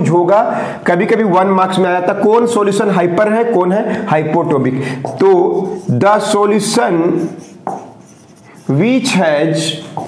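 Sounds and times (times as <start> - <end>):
marker tap: 5.0 - 5.9, 7.2 - 8.4
marker rubbing on whiteboard: 5.0 - 10.0.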